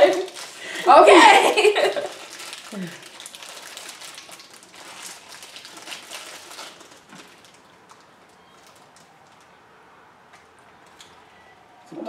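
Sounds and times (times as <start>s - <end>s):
plastic wrappers crinkling: 0.0s - 9.7s.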